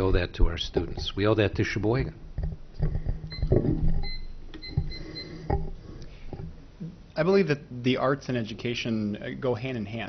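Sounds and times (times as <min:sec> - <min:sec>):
microphone being handled: 0:02.3 - 0:06.6.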